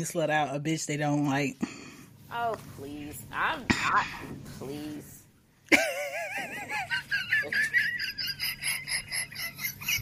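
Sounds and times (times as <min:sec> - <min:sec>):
high-pitched laughter: 0:05.7 - 0:10.0.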